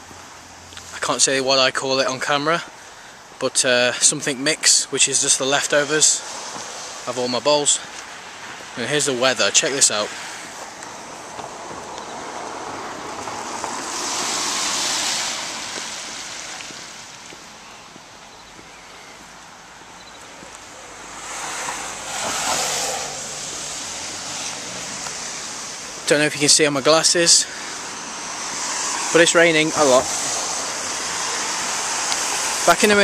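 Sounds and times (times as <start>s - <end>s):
car tyres on wet road: 0.0s - 33.0s
rain hiss: 2.7s - 18.4s, 19.5s - 33.0s.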